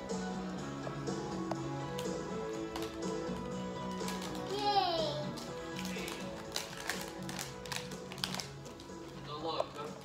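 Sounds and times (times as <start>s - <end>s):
television soundtrack music: 0.0s - 10.0s
plastic snack bag crinkling: 3.8s - 4.6s, 5.3s - 9.0s.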